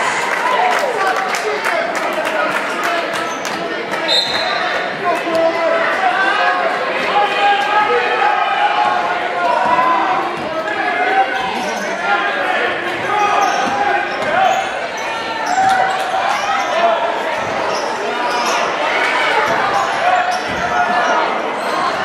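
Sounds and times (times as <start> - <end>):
spectators and players talking: 0.0 - 22.0.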